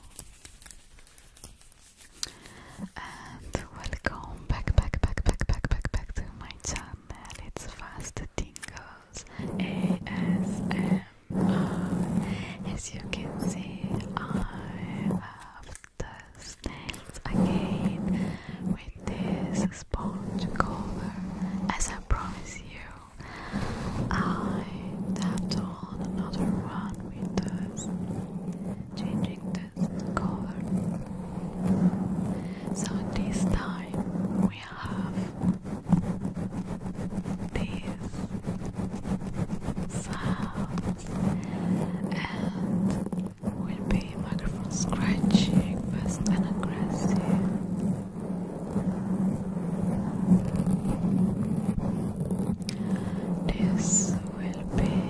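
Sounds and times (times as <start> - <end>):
fingernails scratching foam microphone cover: 0.0 - 55.0.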